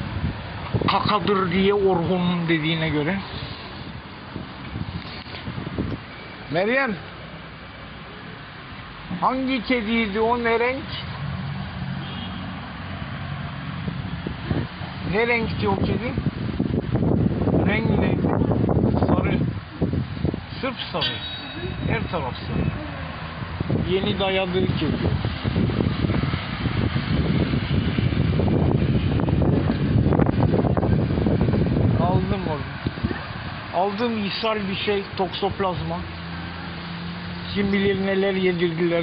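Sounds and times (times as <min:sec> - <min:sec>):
wind buffeting microphone: 0:00.0 - 0:06.2, 0:13.0 - 0:20.8, 0:21.5 - 0:33.8
even hiss: 0:01.5 - 0:07.0.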